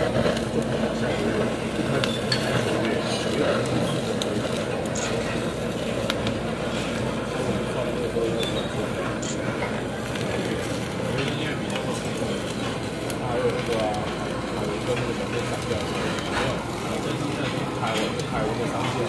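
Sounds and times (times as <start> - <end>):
blowtorch flame roaring: 0.0 - 19.0.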